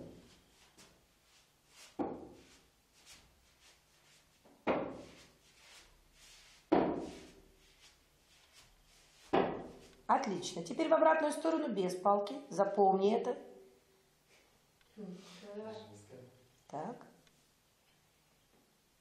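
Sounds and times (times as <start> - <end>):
walking stick knocking on floor: 1.8 - 2.7, 4.4 - 5.4, 6.7 - 7.5, 8.4 - 10.1.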